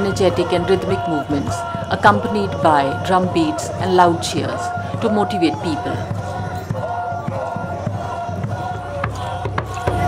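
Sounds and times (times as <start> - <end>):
dancers calling and chanting: 0.0 - 10.0
hand drums beating: 5.4 - 10.0.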